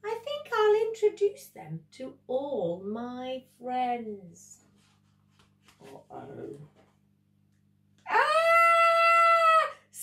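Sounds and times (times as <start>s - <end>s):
woman screaming: 8.1s - 9.9s.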